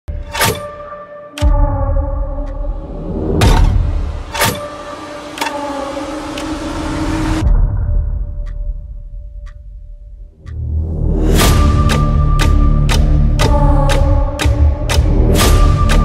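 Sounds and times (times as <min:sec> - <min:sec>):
low rumbling drone: 0:01.4 - 0:16.0.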